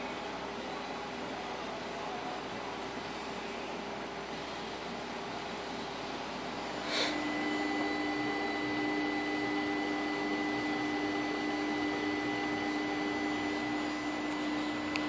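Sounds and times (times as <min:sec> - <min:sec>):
electric motor hum: 0:06.8 - 0:15.0.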